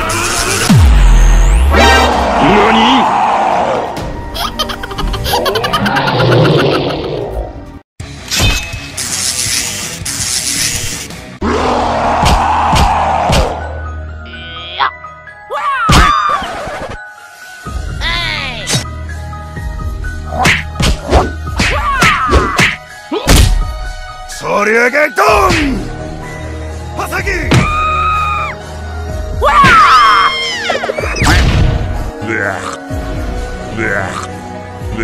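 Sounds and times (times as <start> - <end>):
music: 0.0 - 35.0
punch and whack hits: 12.2 - 13.6, 20.4 - 23.6, 31.2 - 31.8.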